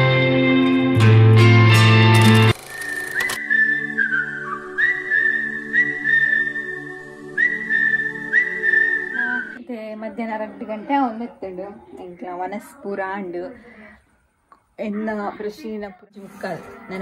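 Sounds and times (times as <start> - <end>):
whistled jingle melody: 2.2 - 9.6
woman speaking: 9.2 - 14.0, 14.8 - 17.0.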